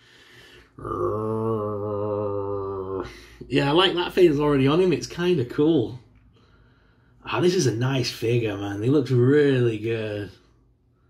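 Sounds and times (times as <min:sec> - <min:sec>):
man holding a low oooh: 0:00.7 - 0:03.1.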